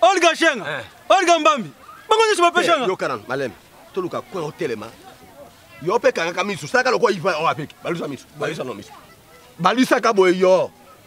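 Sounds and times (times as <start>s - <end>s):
man exclaiming: 0.0s - 3.0s.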